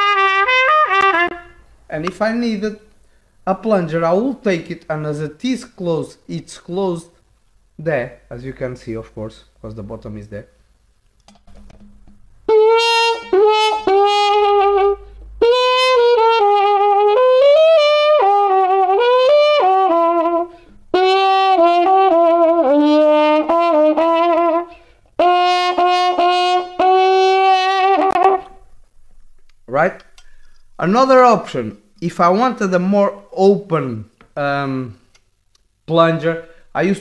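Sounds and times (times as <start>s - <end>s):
muted trumpet melody: 0.0s - 1.6s, 12.5s - 28.7s.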